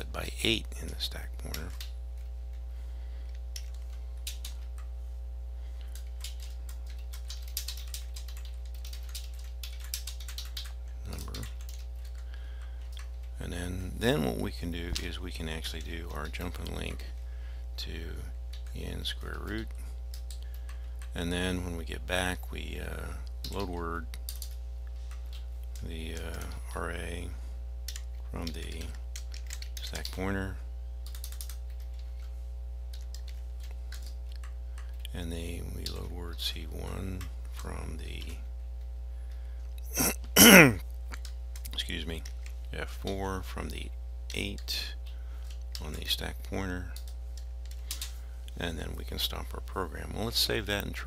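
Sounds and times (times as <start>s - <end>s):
low electrical hum: 0.0s - 51.0s.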